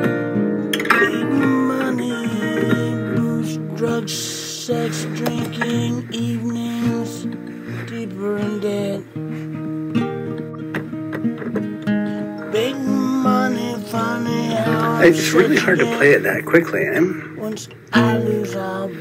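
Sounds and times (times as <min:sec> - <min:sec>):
acoustic guitar picking: 0:00.0 - 0:19.0.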